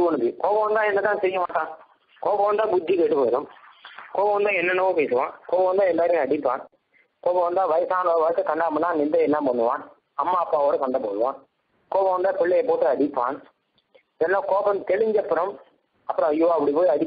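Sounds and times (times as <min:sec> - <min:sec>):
man speaking: 0:00.0 - 0:17.0.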